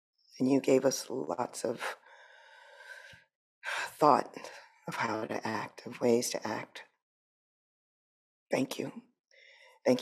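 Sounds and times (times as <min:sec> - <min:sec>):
woman speaking: 0:00.4 - 0:02.0, 0:03.9 - 0:06.8, 0:08.5 - 0:09.0
woman breathing into microphone: 0:02.0 - 0:03.2.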